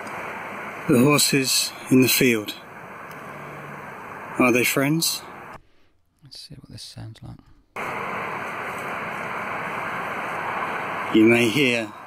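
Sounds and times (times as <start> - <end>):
distant road traffic: 0.0 - 5.6, 7.8 - 12.0
wind: 0.0 - 5.6, 7.8 - 12.0.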